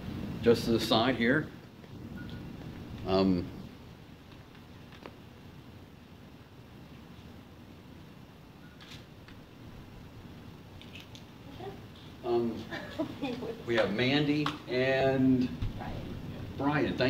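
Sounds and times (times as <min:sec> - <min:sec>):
low rumble and hiss: 0:00.0 - 0:17.0.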